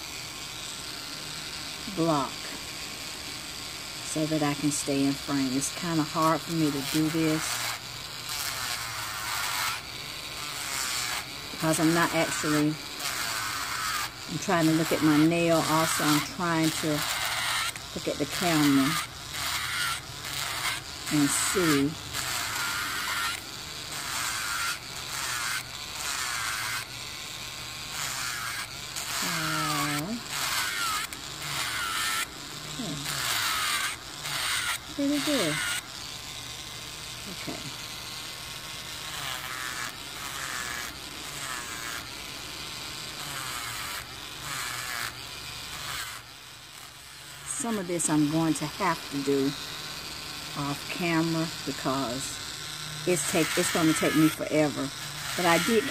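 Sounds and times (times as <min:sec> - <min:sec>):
electric nail drill grinding: 0:00.0 - 0:55.9.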